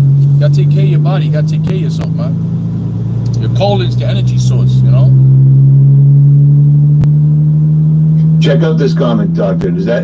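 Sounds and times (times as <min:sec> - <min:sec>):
loud steady low hum: 0:00.0 - 0:10.0.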